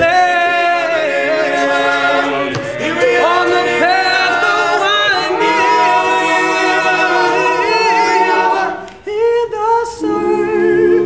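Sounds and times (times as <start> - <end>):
male a cappella group singing: 0.0 - 11.0.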